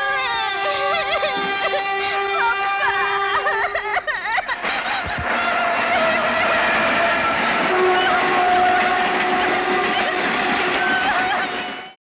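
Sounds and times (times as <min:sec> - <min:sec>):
train horn: 0:00.0 - 0:03.8, 0:05.3 - 0:12.0
train carriages running past: 0:04.6 - 0:12.0.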